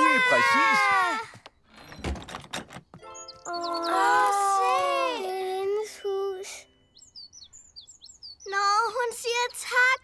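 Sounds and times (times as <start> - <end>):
cartoon bird high tweets: 3.1 - 5.0.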